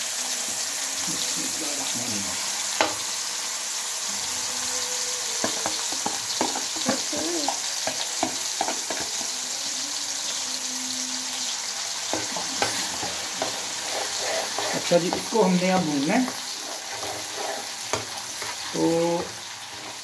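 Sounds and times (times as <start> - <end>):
paste sizzling in hot oil: 0.0 - 20.0.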